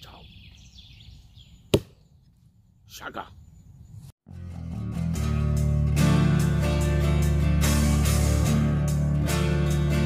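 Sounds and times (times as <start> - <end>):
axe chopping wood: 1.7 - 2.0.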